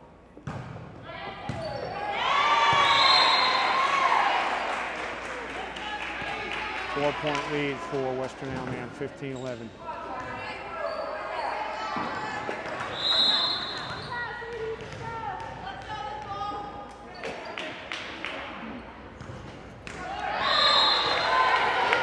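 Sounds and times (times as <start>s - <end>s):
referee's whistle: 2.7s - 3.8s, 12.9s - 14.2s, 20.4s - 21.4s
volleyball ball contacts: 11.9s - 22.0s
crowd cheering and shouting: 20.0s - 22.0s.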